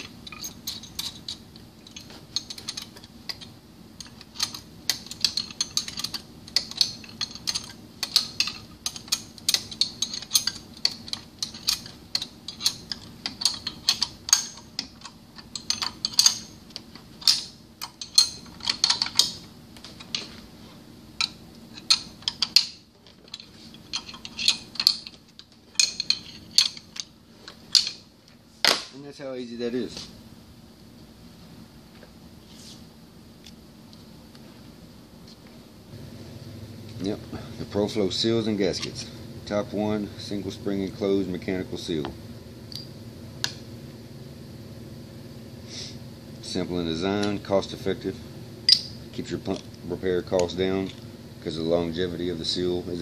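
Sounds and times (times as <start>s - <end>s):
wrench clicking on metal bolts: 0.3s - 19.4s, 21.2s - 27.1s.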